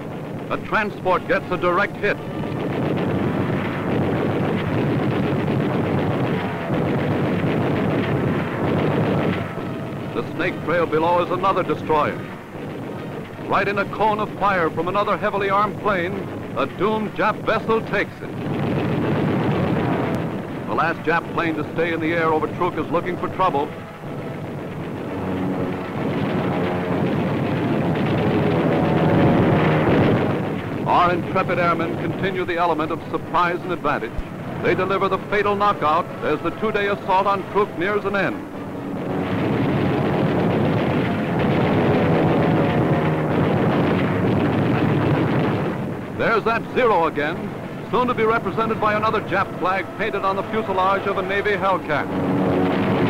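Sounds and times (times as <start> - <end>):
aircraft engine roar: 0.0 - 53.0.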